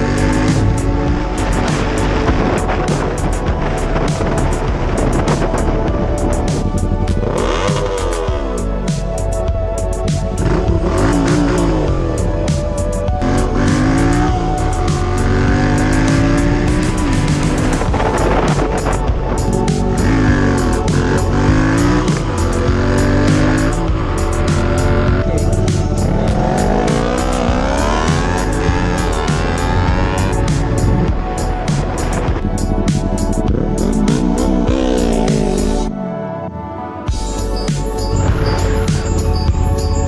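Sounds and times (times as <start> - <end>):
motorcycle engine accelerating: 0.0 - 8.6, 10.2 - 35.9
background music with steady beat: 0.0 - 40.0.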